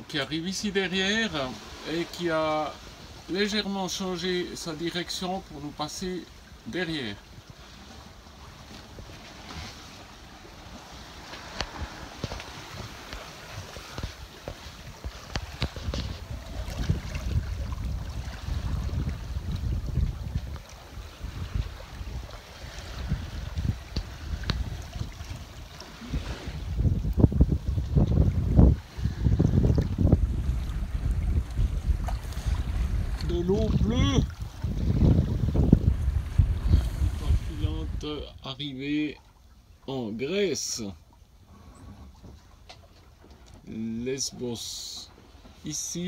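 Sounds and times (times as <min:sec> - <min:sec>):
sea rushing along hull: 0:00.0 - 0:46.0
wind buffeting microphone: 0:07.2 - 0:38.4.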